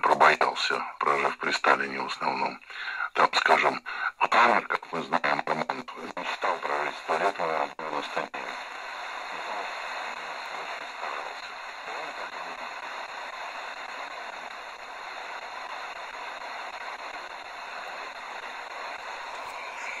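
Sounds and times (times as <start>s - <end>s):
radio static hiss: 0.0s - 20.0s
weak radio broadcast: 0.0s - 20.0s.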